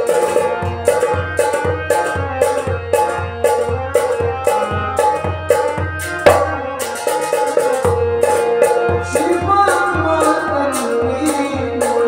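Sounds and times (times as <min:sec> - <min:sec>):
hand drum rhythm: 0:00.0 - 0:12.0
harmonium chords: 0:00.0 - 0:12.0.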